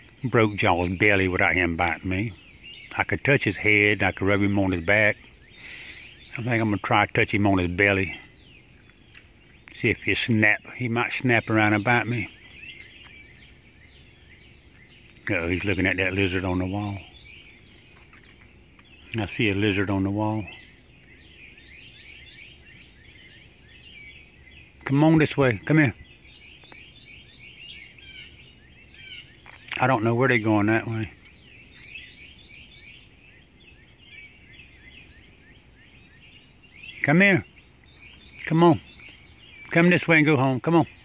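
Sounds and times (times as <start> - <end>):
bird chirps: 0.0 - 41.0
faint low hum: 0.0 - 41.0
low background hiss: 0.0 - 41.0.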